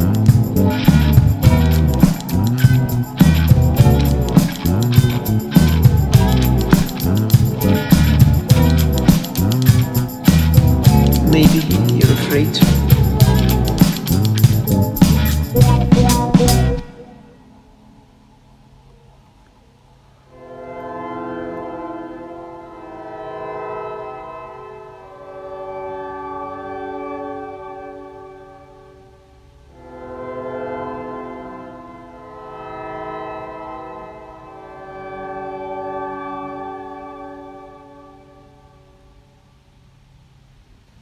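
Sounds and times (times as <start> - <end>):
slow sustained instrumental chords: 0.0 - 39.6.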